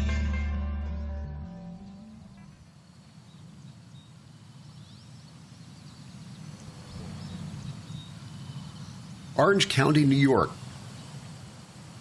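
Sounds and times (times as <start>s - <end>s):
guitar music: 0.0s - 2.2s
high bird chirps: 1.7s - 11.4s
low rumble: 6.6s - 8.4s.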